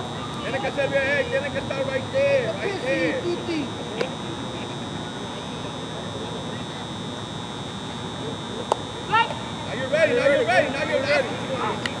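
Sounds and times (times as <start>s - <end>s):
high-pitched whine: 0.0s - 12.0s
outdoor background noise: 0.0s - 12.0s.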